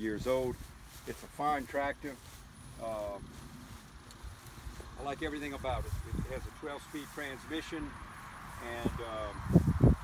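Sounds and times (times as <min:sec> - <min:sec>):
wind rumbling on microphone: 0:02.3 - 0:10.0.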